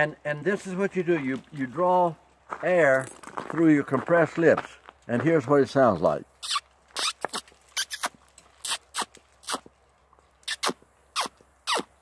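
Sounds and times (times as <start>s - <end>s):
man making squeaky bird calls: 6.4s - 9.7s, 10.4s - 12.0s.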